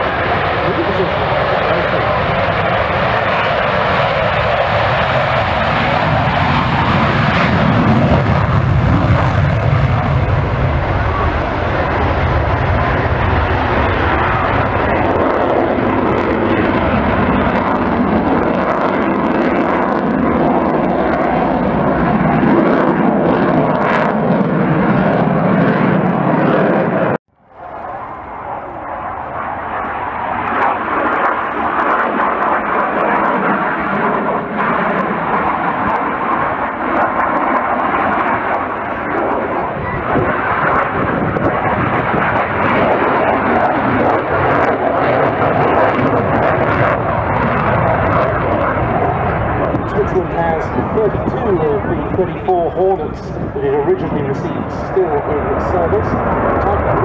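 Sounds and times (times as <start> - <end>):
jet engine roar: 0.0 - 57.0.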